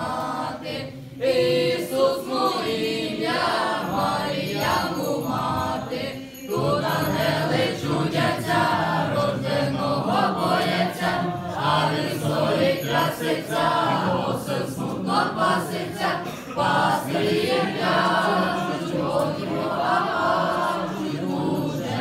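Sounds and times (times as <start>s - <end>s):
male voices singing carol: 0.0s - 22.0s.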